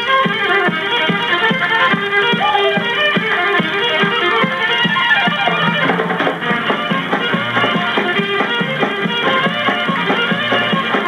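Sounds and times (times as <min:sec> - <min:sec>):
fiddle leading: 0:00.1 - 0:04.8
country band playing: 0:02.4 - 0:04.1.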